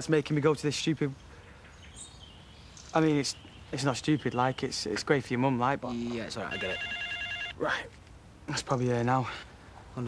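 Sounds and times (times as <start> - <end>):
faint bird chirp: 0.8 - 7.1.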